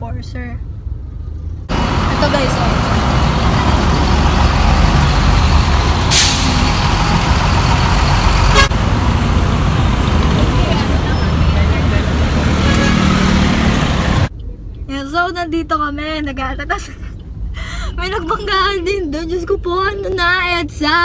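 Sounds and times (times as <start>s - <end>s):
heavy road traffic rumble: 0.0s - 21.0s
bus air brakes hissing: 6.0s - 8.1s.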